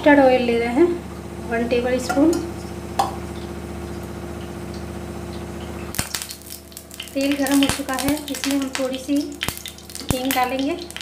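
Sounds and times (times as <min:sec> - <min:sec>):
mechanical motor hum: 0:00.0 - 0:11.0.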